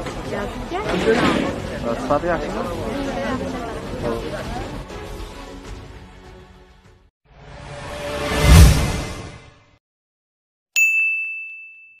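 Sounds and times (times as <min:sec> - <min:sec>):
notification bell ding: 0:10.8 - 0:12.0.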